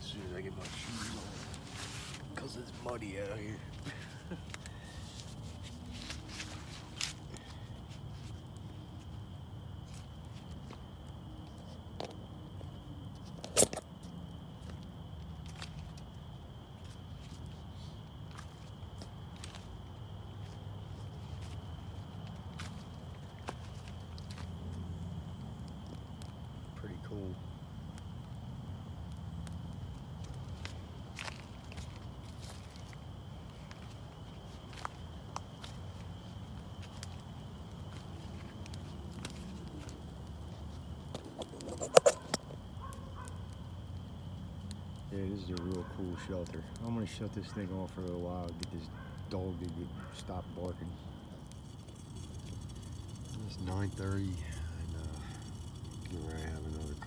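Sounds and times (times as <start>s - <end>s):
wood fire crackling: 0.0s - 57.0s
dog barking: 42.8s - 43.4s, 49.0s - 49.2s.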